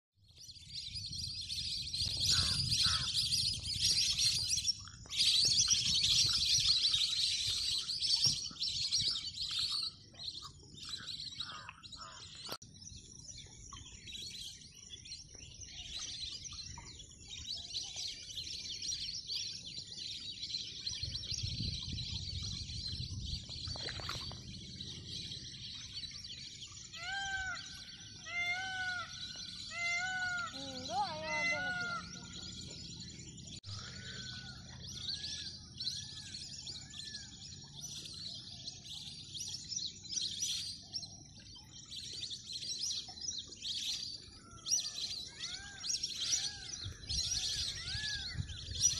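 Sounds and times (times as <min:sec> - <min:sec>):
small birds chirping: 0:00.3 - 0:48.9.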